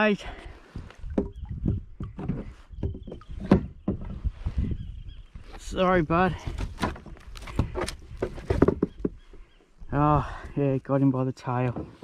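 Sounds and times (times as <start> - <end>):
net and fish knocking on kayak hull: 0.8 - 4.2, 6.5 - 9.2.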